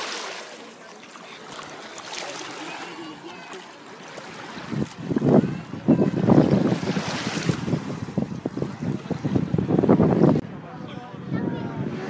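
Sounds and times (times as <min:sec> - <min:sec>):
small waves washing ashore: 0:00.0 - 0:10.4
wind buffeting microphone: 0:04.2 - 0:12.0.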